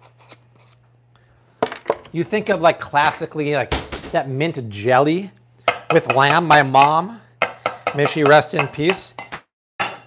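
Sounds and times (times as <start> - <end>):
low steady hum: 0.0 - 10.0
man talking: 2.1 - 7.3, 7.9 - 9.2.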